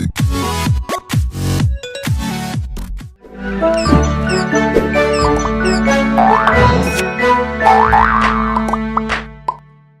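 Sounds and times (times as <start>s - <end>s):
cartoon jingle music: 3.3s - 8.7s.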